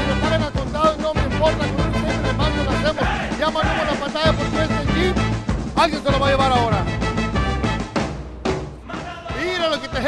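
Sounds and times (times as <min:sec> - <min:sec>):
man calling out: 0:00.0 - 0:07.0, 0:08.8 - 0:10.0
low background music: 0:00.0 - 0:10.0.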